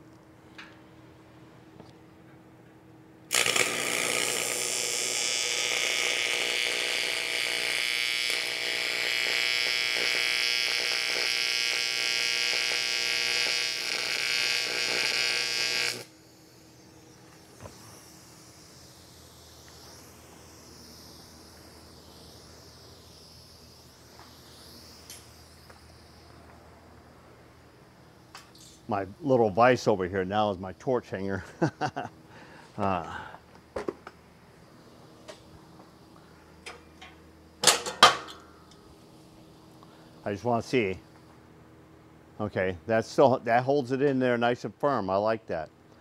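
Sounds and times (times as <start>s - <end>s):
welding arc buzzing: 3.3s - 41.2s.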